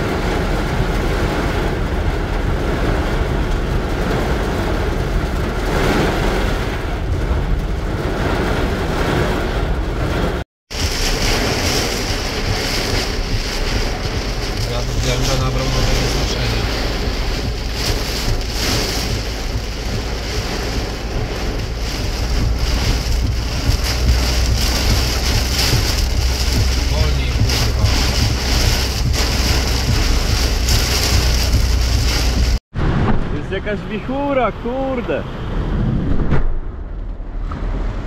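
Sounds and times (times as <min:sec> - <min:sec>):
heavy rain on car roof: 0:00.0 - 0:32.7
car driving rumble: 0:00.0 - 0:38.0.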